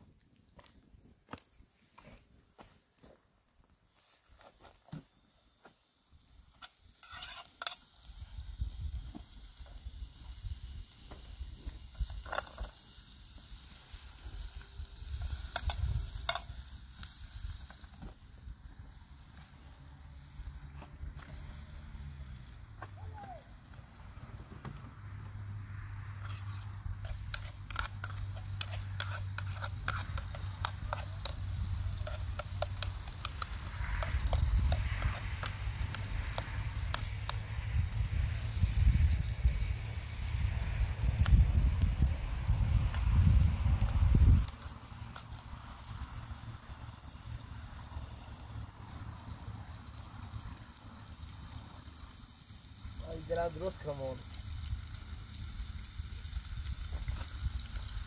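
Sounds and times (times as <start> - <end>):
burning twigs crackling: 0.0 - 58.0
food sizzling in a pan: 3.9 - 58.0.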